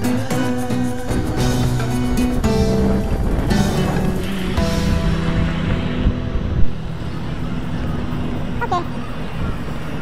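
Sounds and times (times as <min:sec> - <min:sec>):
traffic noise: 0:02.2 - 0:10.0.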